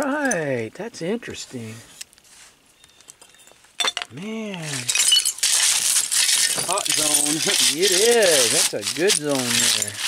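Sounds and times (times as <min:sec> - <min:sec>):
glass bottles clinking: 0:03.8 - 0:10.0.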